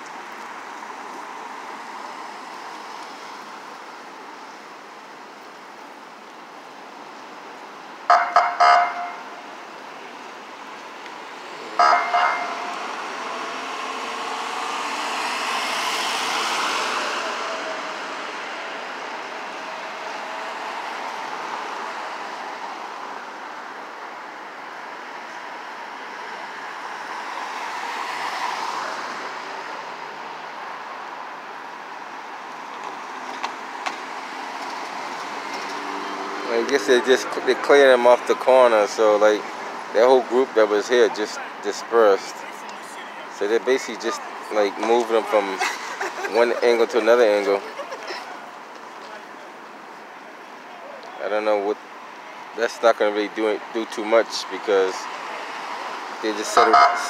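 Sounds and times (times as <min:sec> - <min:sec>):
street traffic: 0:00.0 - 0:57.0
vehicle horn toots: 0:08.1 - 0:09.3, 0:11.8 - 0:12.8, 0:56.6 - 0:57.0
ambulance driving past: 0:08.1 - 0:10.1, 0:11.2 - 0:57.0.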